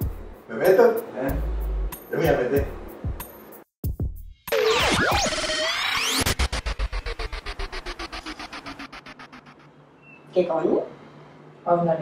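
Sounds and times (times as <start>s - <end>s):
fast pulsing synth throb: 4.5s - 9.7s
synthesized whistle-like glides: 4.5s - 9.8s.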